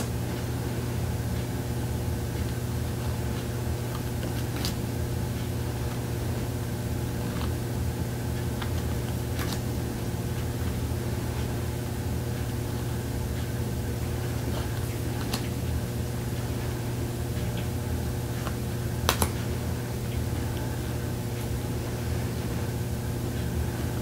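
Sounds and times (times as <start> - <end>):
air conditioner running: 0.0 - 24.0
faint clicks of cards handled: 3.3 - 4.8, 8.4 - 9.8, 14.5 - 15.6, 18.4 - 19.5.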